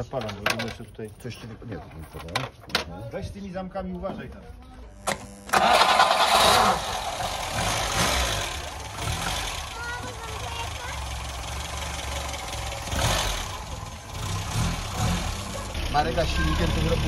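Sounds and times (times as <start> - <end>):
car engine idling: 5.6 - 17.0.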